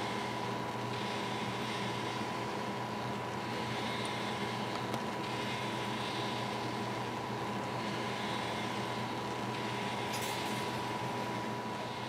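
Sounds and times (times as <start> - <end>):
machinery low hum: 0.0 - 12.0.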